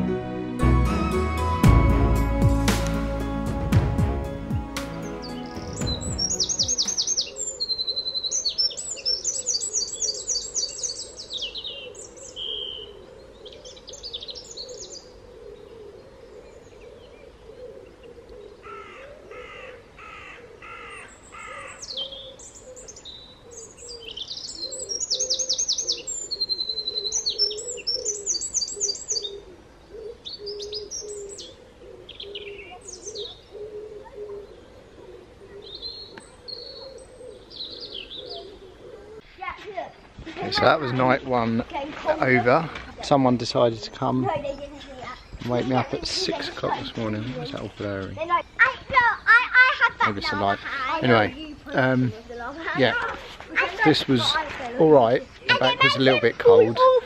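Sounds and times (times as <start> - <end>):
garden birds singing: 1.1 - 57.0
harsh lower bird calls: 4.9 - 57.0.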